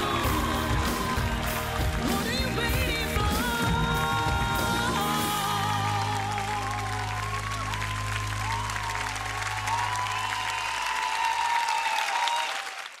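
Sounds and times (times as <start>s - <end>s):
studio audience applauding: 0.0s - 13.0s.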